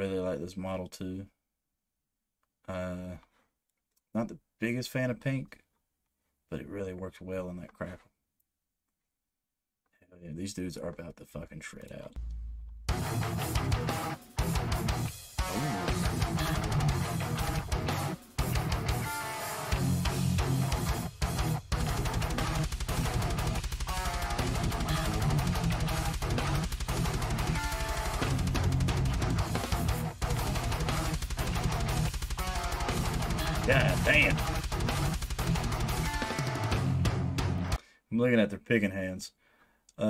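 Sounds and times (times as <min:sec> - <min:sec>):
death metal backing track: 0:12.2 - 0:37.8
electric guitars shredding fast riffs: 0:12.9 - 0:37.8.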